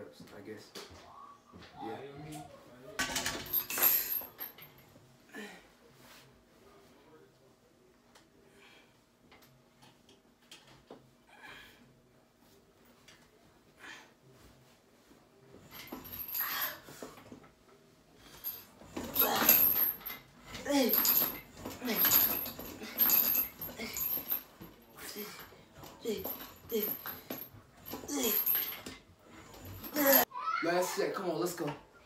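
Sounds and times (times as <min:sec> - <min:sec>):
man grunting and whimpering: 0:28.0 - 0:28.6.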